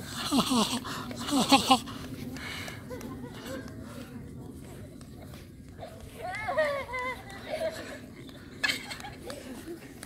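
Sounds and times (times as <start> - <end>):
faint voices of people playing: 0.0 - 10.0.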